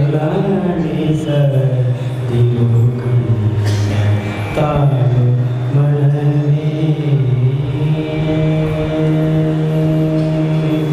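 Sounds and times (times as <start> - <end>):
man singing into a microphone: 0.0 - 10.9.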